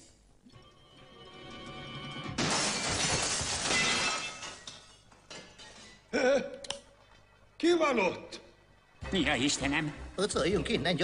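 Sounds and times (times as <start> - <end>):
background music: 0.0 - 11.0
cartoon glass shattering: 2.4 - 5.0.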